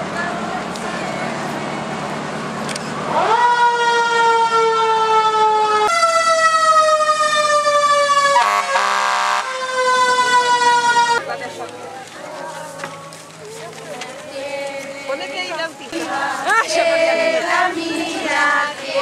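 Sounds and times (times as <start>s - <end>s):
fire truck siren wailing: 3.0s - 11.4s
horn blast: 8.4s - 11.2s.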